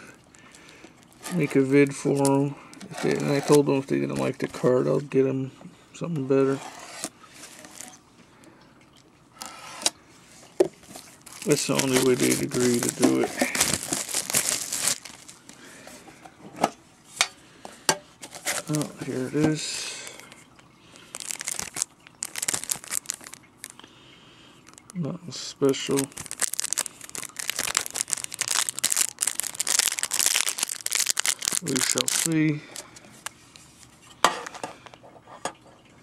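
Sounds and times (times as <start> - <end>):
plastic wrap crinkling: 0.0 - 5.0, 6.9 - 8.0, 10.8 - 15.8, 18.2 - 23.8, 24.6 - 25.0, 25.6 - 33.9.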